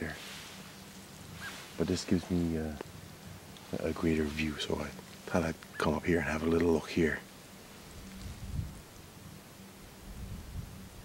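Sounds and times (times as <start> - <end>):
slight rustling: 0.0 - 9.2
faint hiss: 0.0 - 11.0
wind rumble on microphone: 7.7 - 11.0.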